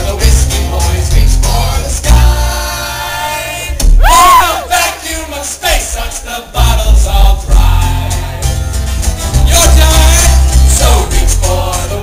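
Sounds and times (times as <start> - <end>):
live band playing: 0.0 - 3.1, 6.6 - 12.0
crowd cheering: 3.9 - 4.9
loud yell: 4.0 - 5.0.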